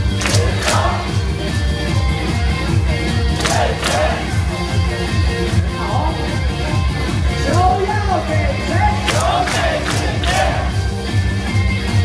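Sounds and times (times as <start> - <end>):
cheer song over stadium speakers: 0.0 - 12.0
crowd chanting: 0.2 - 1.1, 3.4 - 4.4, 8.9 - 10.8
crowd shouts: 8.9 - 10.7.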